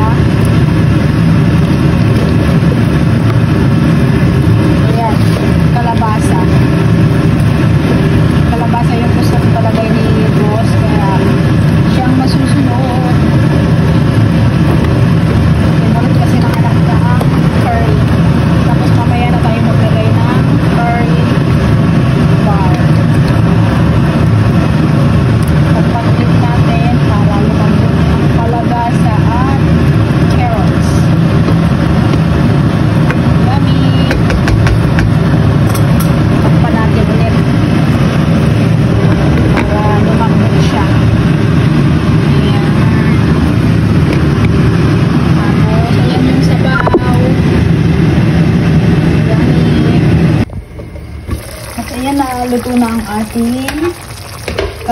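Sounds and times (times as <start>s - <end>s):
low mechanical rumble: 0.0s - 54.9s.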